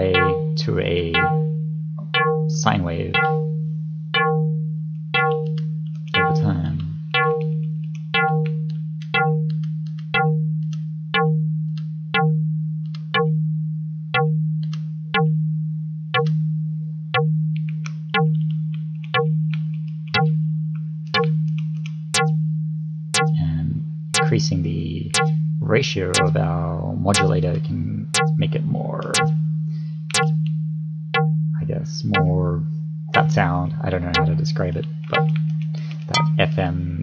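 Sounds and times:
plucked synth bass note: 0.0s - 18.6s, 19.2s - 19.6s, 20.2s - 21.5s, 22.2s - 37.0s.

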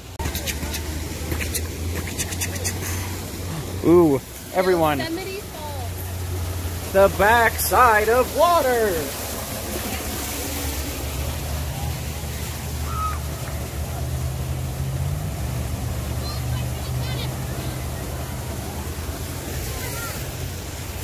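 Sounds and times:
waterfall splashing into a pond: 0.0s - 21.0s.

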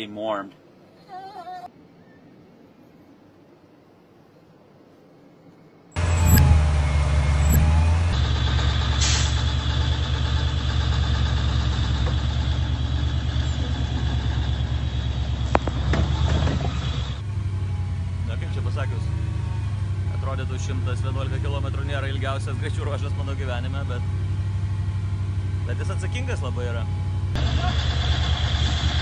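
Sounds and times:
rally car engine running: 6.0s - 29.0s.

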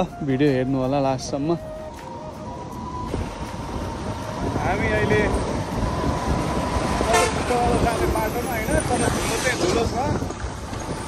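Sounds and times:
trucks passing: 0.0s - 11.0s
vehicle engine and road rumble: 0.0s - 11.0s.

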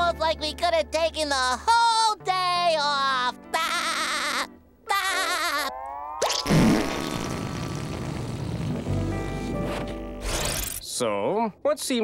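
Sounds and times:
wavering cartoon tone: 3.6s - 6.6s.

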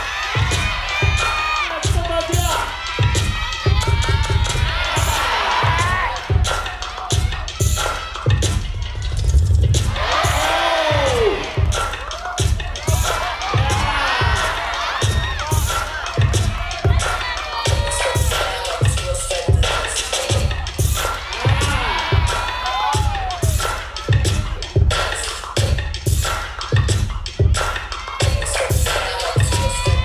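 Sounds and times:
crowd cheering and shouting: 0.0s - 30.0s
hip hop beat: 0.0s - 30.0s.

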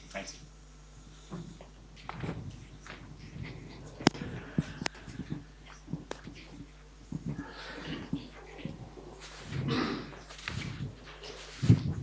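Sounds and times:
faint rustling: 1.3s - 12.0s.

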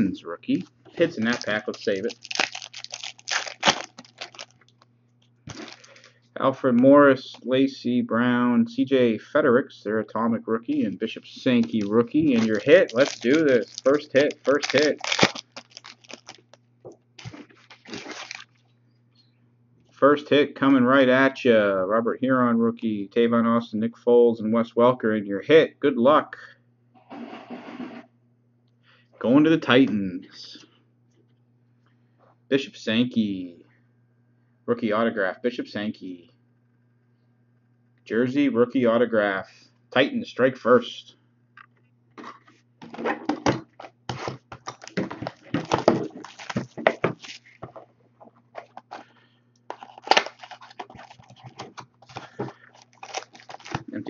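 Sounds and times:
wrapper tearing and crinkling: 1.1s - 4.8s, 5.5s - 6.1s, 11.6s - 16.6s, 17.2s - 18.6s, 44.1s - 47.5s, 49.7s - 54.0s.

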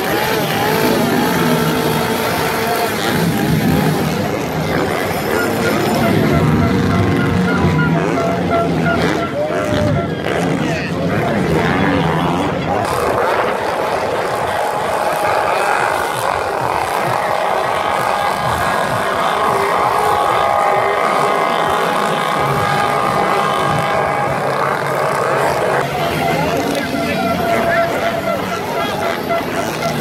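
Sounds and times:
crowd voices: 0.0s - 30.0s
motocross bike engines at high revs: 0.0s - 30.0s.

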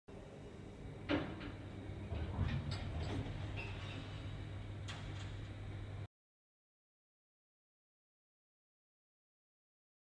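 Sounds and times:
elevator low hum: 0.1s - 6.1s
elevator door mechanism clunk: 1.0s - 5.6s.

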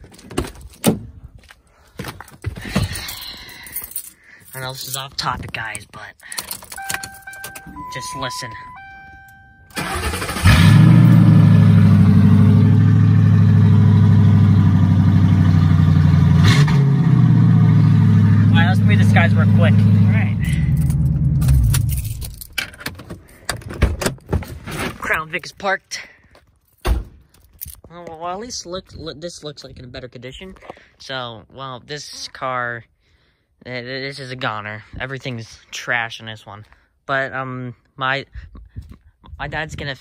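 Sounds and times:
car keys jangling: 2.9s - 5.2s, 6.0s - 10.4s, 20.4s - 24.3s, 26.6s - 27.9s
electronic tone: 6.8s - 9.9s.

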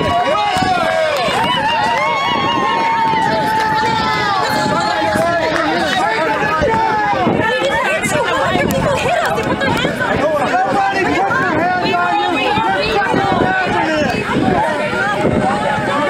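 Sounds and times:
crowd shouting and yelling: 0.0s - 16.0s.

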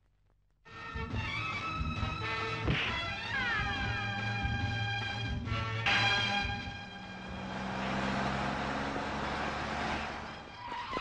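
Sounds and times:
car engine hum: 3.2s - 11.0s.

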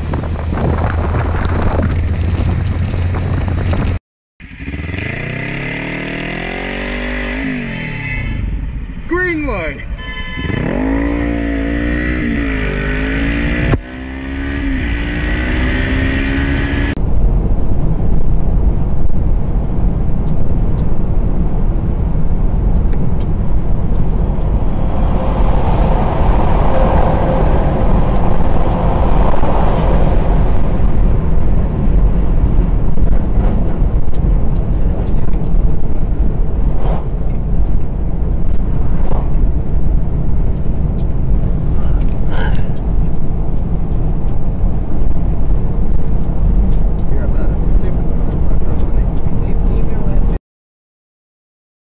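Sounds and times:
road and wind noise inside car: 0.0s - 4.0s, 4.6s - 50.4s
motorcycle engine revving: 0.4s - 8.6s, 10.3s - 17.0s, 23.6s - 34.0s.

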